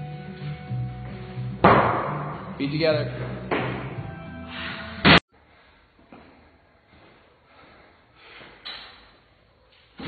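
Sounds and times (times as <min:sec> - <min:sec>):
background music with bass line: 0:00.0 - 0:05.2.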